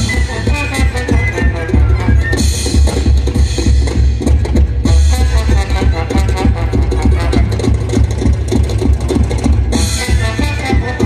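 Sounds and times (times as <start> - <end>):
fast drum beat: 0.0 - 11.0
live band music: 0.0 - 11.0.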